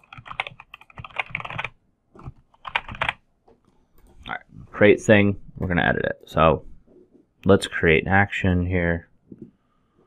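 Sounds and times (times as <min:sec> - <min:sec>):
keyboard typing clicks: 0:00.0 - 0:03.2.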